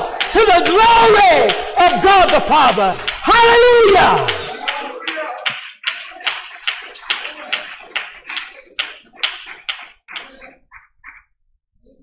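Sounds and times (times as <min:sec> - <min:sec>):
congregation clapping in rhythm: 0:00.0 - 0:11.3.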